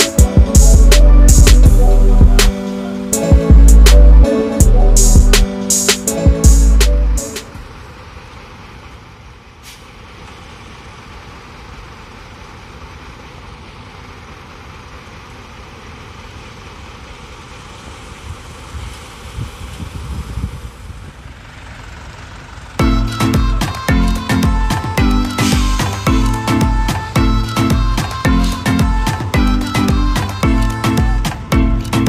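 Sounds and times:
concrete mixer truck running: 0.0s - 32.0s.

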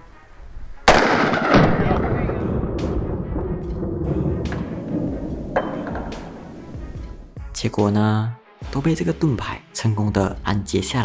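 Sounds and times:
long rumbling echo: 0.9s - 7.4s.

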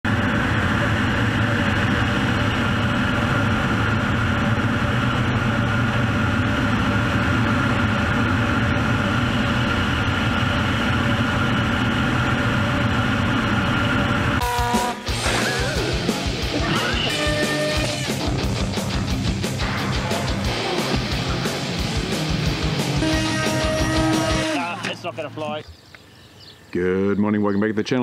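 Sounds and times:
aircraft engine and propeller drone: 0.0s - 26.7s
steady whine: 0.0s - 26.8s.

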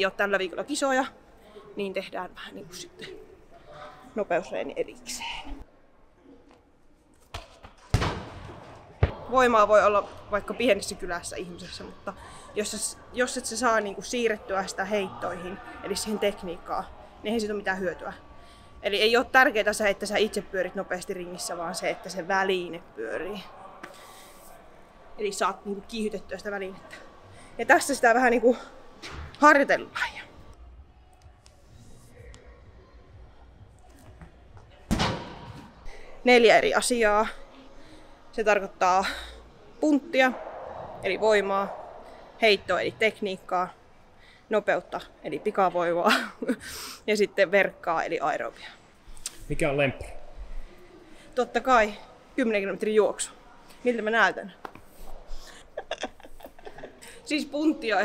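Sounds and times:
heavy ball thudding in a hall: 7.3s - 10.3s, 34.9s - 35.8s.

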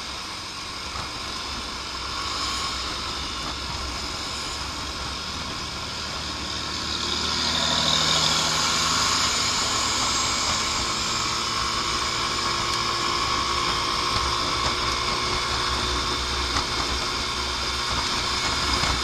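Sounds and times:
scooter engine running: 0.0s - 19.0s
wind and road noise: 0.0s - 19.0s.

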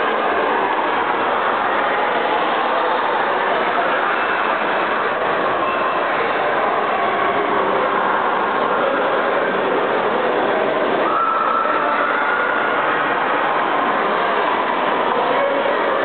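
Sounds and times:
echoing voices in a hall: 0.0s - 16.0s.

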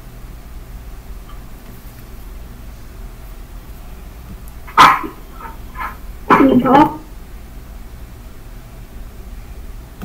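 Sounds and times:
dog barking: 4.7s - 7.0s.

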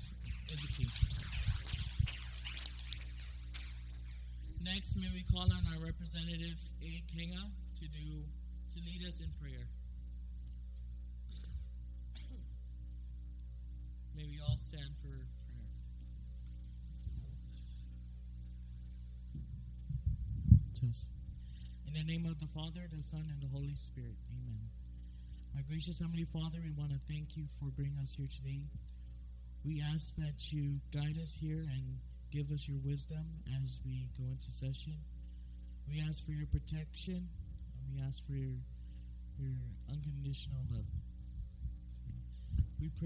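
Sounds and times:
electrical hum: 0.0s - 43.0s.

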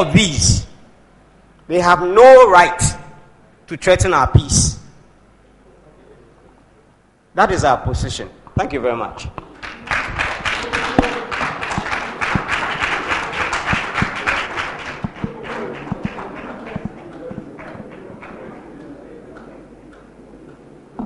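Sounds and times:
audience applauding: 9.5s - 19.2s.

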